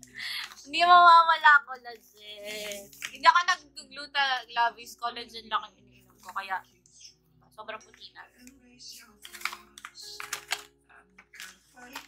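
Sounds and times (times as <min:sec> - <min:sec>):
plastic pouch crinkling: 0:00.2 - 0:00.7, 0:02.4 - 0:03.2, 0:09.0 - 0:12.0.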